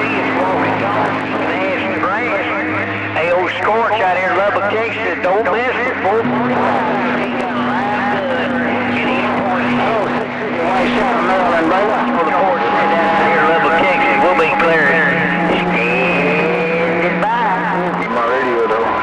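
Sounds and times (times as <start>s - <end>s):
garbled radio voices: 0.0s - 18.9s
radio static: 6.6s - 19.0s.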